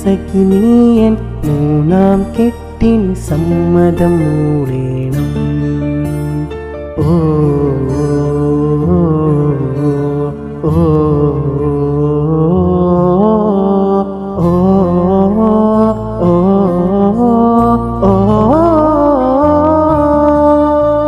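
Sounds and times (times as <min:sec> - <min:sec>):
man singing devotional song: 0:00.0 - 0:21.0.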